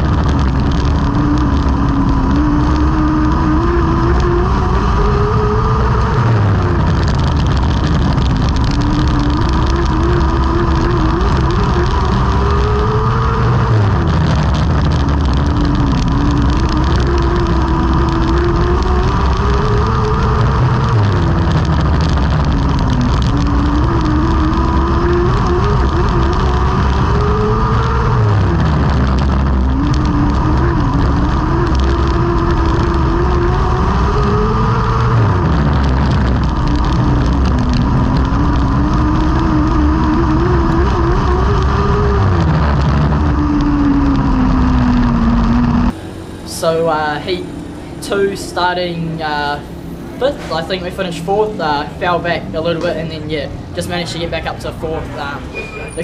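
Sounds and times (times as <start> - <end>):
heavy wind: 0.0 - 56.0
race car engine: 0.0 - 56.0
tyre noise: 0.0 - 56.0.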